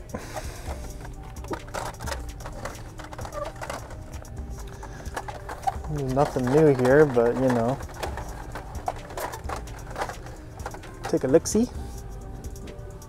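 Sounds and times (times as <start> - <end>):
loud background music: 0.0 - 13.0
plastic packaging clicks: 0.2 - 11.4.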